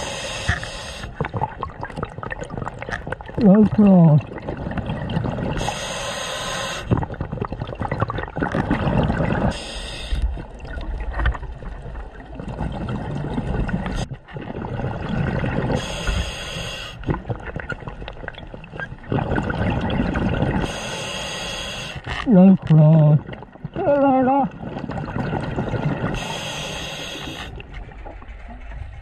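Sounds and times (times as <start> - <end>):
regulator inhalation hiss: 0.0 - 1.1, 5.6 - 6.9, 9.5 - 10.2, 15.8 - 17.0, 20.6 - 22.1, 26.2 - 27.5
gurgling exhaust bubbles: 1.1 - 5.6, 6.9 - 9.6, 10.5 - 15.8, 17.0 - 20.7, 22.2 - 26.2.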